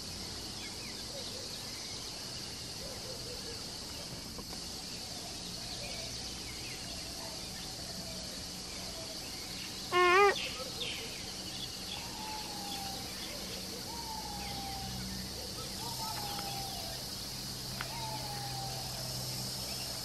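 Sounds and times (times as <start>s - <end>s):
insects droning: 0.0s - 20.0s
loud short wavering call: 9.9s - 10.6s.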